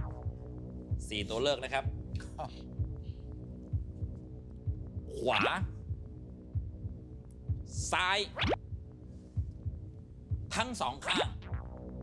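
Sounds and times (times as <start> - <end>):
man's voice: 5.1 - 5.7, 7.8 - 8.4, 10.5 - 11.4
heartbeat-like thump: 8.4 - 10.6, 11.2 - 11.8.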